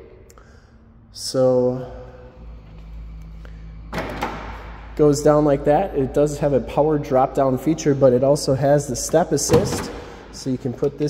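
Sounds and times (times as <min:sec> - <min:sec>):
faint hum: 0:00.0 - 0:11.0
low steady rumble: 0:00.0 - 0:11.0.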